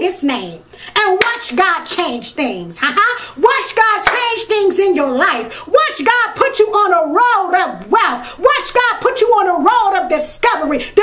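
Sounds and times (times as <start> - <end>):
woman's sing-song voice: 0.0 - 11.0
sharp clap: 1.2 - 1.4, 4.0 - 4.3.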